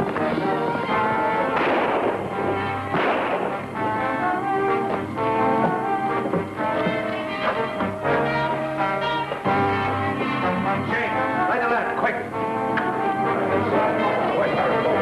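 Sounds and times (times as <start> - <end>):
dramatic orchestral music with brass: 0.0 - 15.0.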